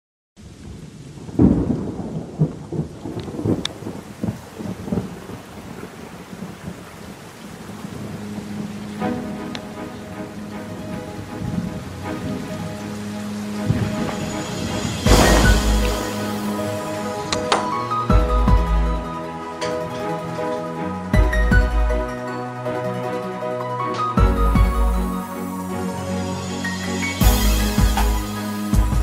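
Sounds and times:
rolling thunder: 0.4s - 9.4s, 10.7s - 20.5s
rain: 0.4s - 29.0s
loud thunderclap: 0.5s - 6.8s, 13.6s - 19.1s
pop song intro with held chords: 20.5s - 29.0s.

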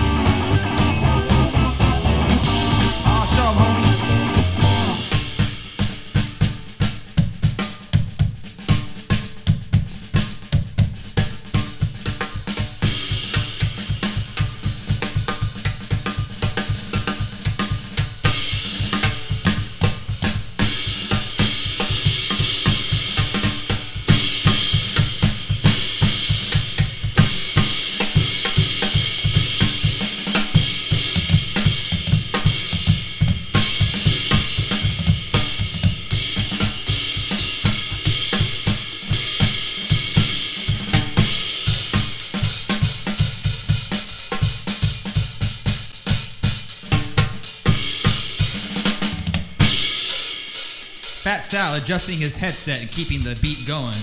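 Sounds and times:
rockabilly band playing live: 0.0s - 49.8s, 50.9s - 54.0s
drum kit fast beat: 0.0s - 54.0s.

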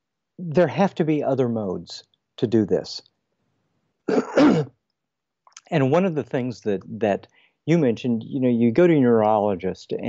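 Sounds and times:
person clearing throat: 4.1s - 4.7s.

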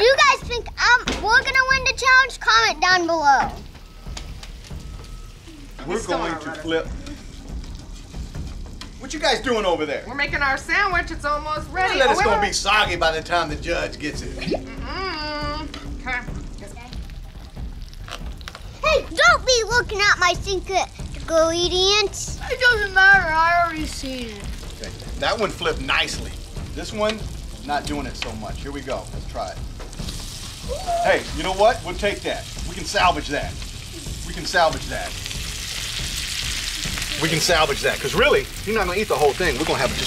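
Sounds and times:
low rumble: 3.6s - 40.0s
bacon sizzling on griddle: 15.8s - 40.0s.

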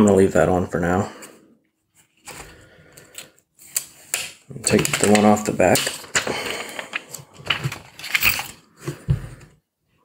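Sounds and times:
plastic film peeling and crinkling: 3.6s - 8.6s.

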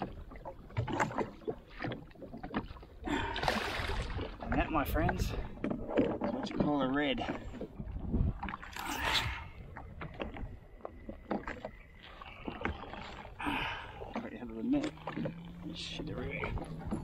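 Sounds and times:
water lapping against hull: 0.0s - 17.0s.

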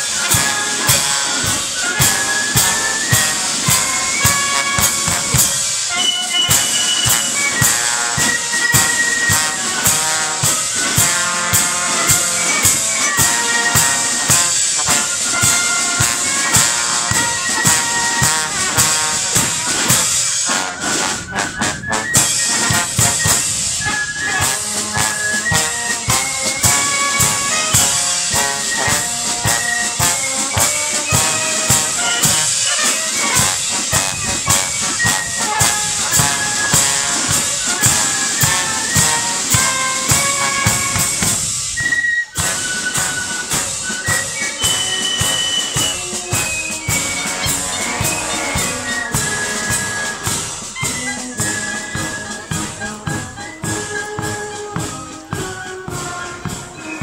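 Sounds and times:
brass band playing: 0.0s - 57.0s
marching drums: 0.0s - 57.0s.

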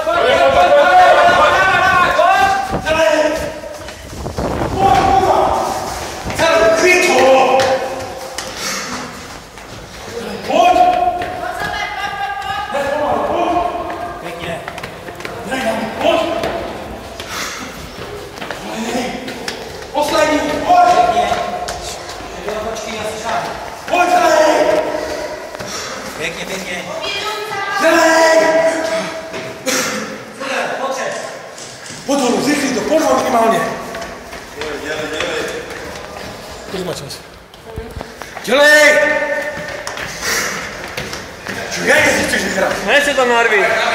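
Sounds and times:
men shouting encouragement: 0.0s - 3.5s, 4.7s - 8.1s, 23.9s - 25.5s
people hurrying down stairs: 0.0s - 43.9s
boots knocking on stairs: 9.5s - 25.9s
man calling out: 23.9s - 25.5s, 27.8s - 29.3s.

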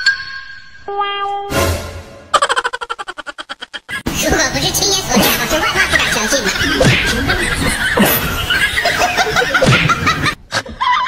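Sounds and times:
high-pitched snickering laughter: 2.3s - 4.0s.

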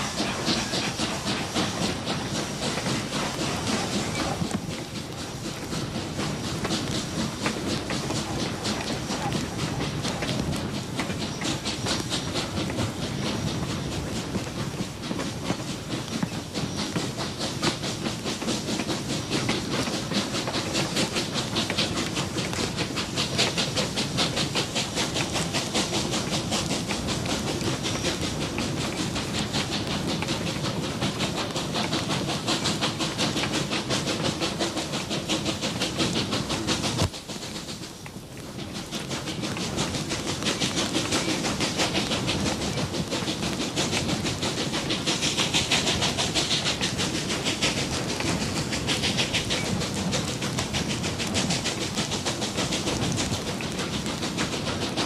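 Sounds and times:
steam hissing: 0.0s - 55.0s
steam locomotive exhaust beats: 0.0s - 55.0s.

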